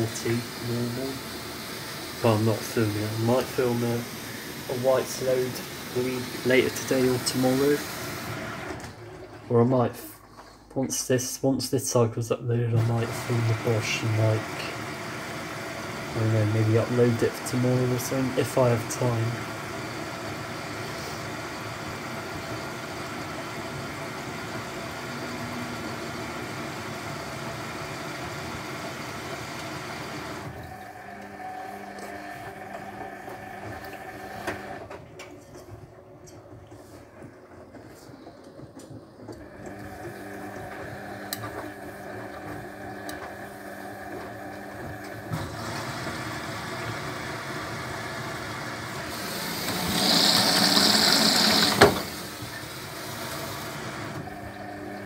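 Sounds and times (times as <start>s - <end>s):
water rushing into machine: 0.0s - 9.7s, 12.8s - 34.9s, 39.4s - 55.0s
washing machine humming: 0.0s - 11.2s, 12.0s - 55.0s.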